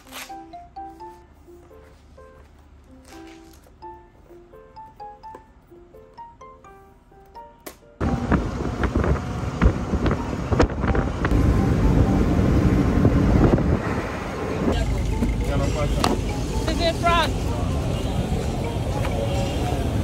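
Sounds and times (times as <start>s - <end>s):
vehicle road noise rumble: 8.0s - 20.0s.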